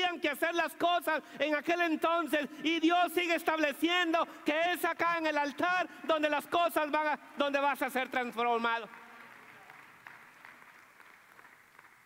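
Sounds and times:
scattered applause: 0:08.1 - 0:12.0.

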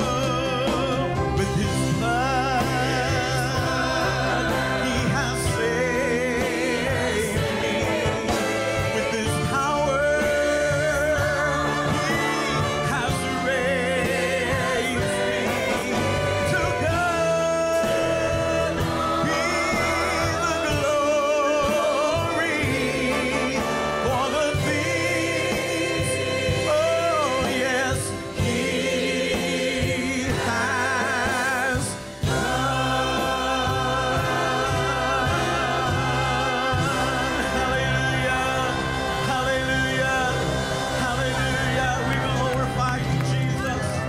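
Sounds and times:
gospel choir singing: 0:00.0 - 0:44.0
live band with drum kit: 0:00.0 - 0:44.0
man singing with vibrato: 0:00.0 - 0:44.0.

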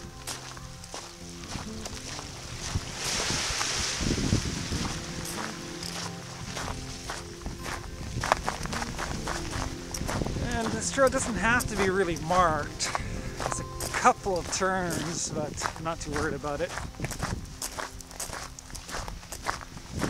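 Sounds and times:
background music: 0:00.0 - 0:20.0
footsteps crunching on gravel: 0:00.0 - 0:20.0
wind on microphone: 0:00.0 - 0:20.0.

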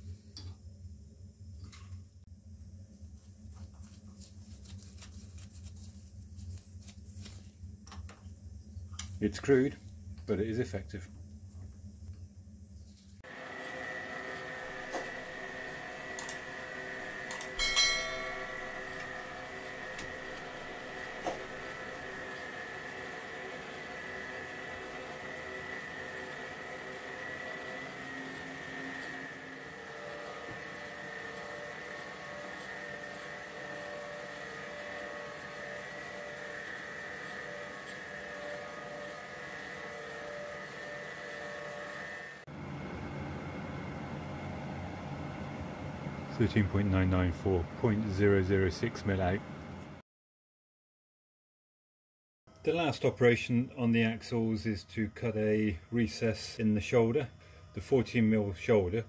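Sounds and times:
metal lathe whining: 0:13.3 - 0:42.5
clicks: 0:17.3 - 0:17.6
sharp metallic ring: 0:17.6 - 0:19.1.

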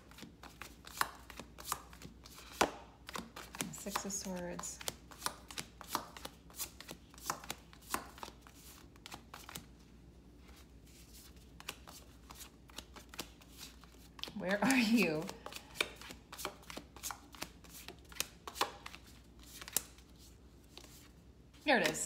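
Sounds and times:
cards flicking: 0:11.6 - 0:20.0.

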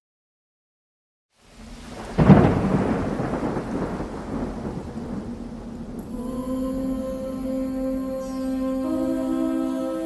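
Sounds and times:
thunder crack and rumble: 0:01.6 - 0:06.2.

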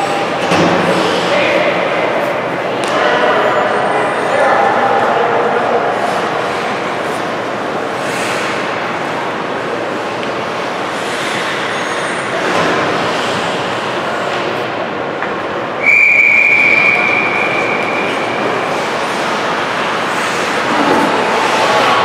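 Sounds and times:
referee's whistle blast: 0:15.8 - 0:18.2.

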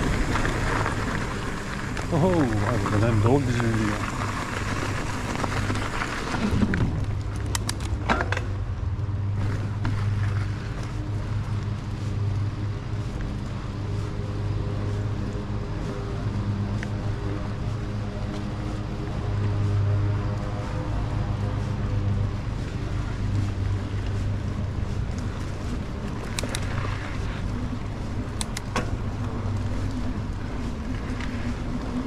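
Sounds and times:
bike clicks and rattles: 0:00.0 - 0:32.0
bike tyres rumbling on gravel: 0:00.0 - 0:32.0.

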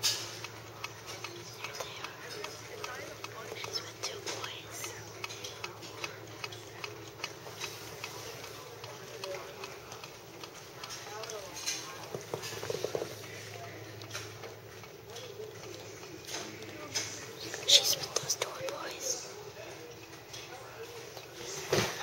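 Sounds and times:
faint indistinct voices: 0:00.0 - 0:22.0.

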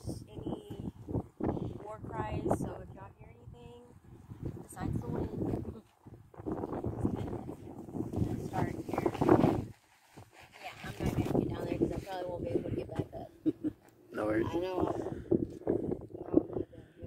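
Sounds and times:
people talking indistinctly: 0:01.7 - 0:03.9, 0:04.6 - 0:05.8, 0:07.0 - 0:09.3, 0:10.6 - 0:15.4.

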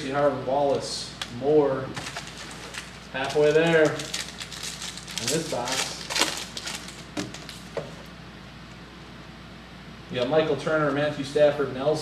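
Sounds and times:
foil wrapper crinkling: 0:02.0 - 0:07.8.

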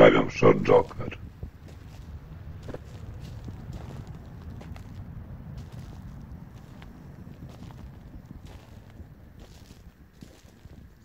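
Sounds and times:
steady low rumble: 0:00.0 - 0:11.0
footsteps on snowy dirt path: 0:00.8 - 0:11.0.

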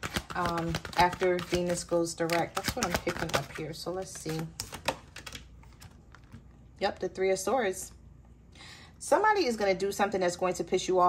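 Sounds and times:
cards being shuffled: 0:00.0 - 0:06.5.

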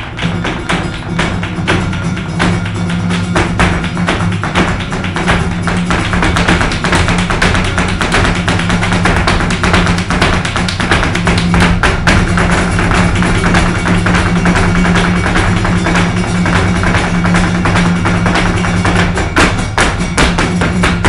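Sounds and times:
flamenco guitar playing: 0:00.0 - 0:21.0
rhythmic hand-clapping: 0:00.0 - 0:21.0
shoes striking stage floor: 0:00.0 - 0:21.0.

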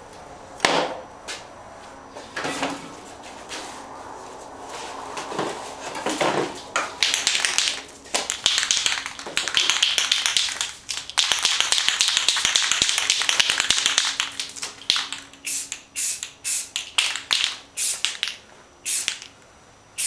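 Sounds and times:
spray can ball rattling: 0:07.0 - 0:19.3.

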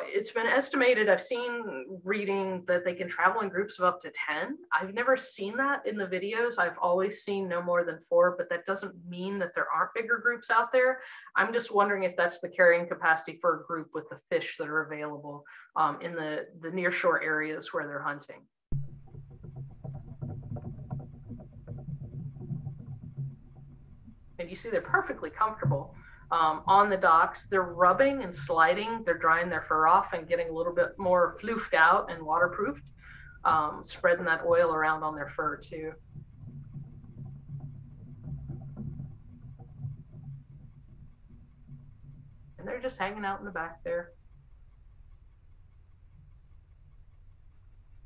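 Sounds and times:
low steady rumble: 0:00.0 - 0:48.0
faint knocks: 0:18.7 - 0:46.4
steady low hum: 0:18.7 - 0:48.0
otters knocking and scuffing on boards: 0:18.8 - 0:24.3.

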